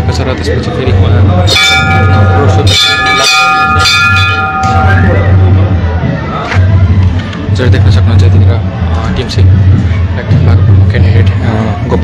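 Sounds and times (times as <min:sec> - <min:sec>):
bell ringing: 0:01.5 - 0:05.8.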